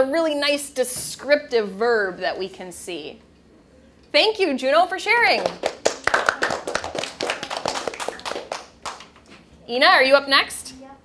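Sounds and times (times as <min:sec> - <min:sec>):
people clapping: 0:05.4 - 0:09.3.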